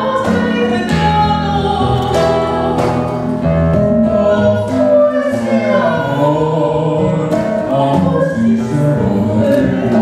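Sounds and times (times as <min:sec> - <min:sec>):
woman singing: 0:00.0 - 0:10.0
layered backing voices singing: 0:03.9 - 0:10.0.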